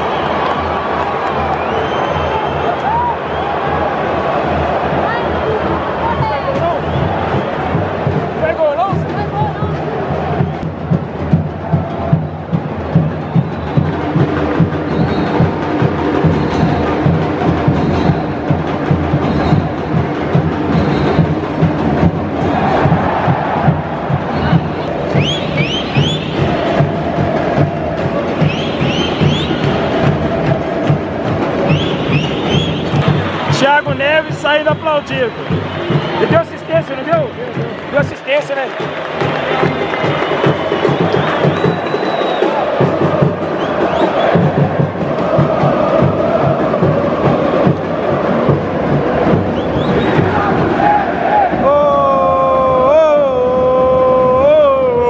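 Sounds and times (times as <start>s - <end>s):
steady drum beat: 0.0s - 55.0s
crowd singing and chanting: 19.8s - 55.0s.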